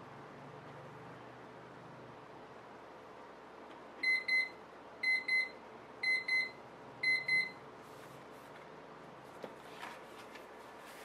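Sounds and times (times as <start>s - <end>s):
electronic timer alarm beeping: 4.0s - 7.6s.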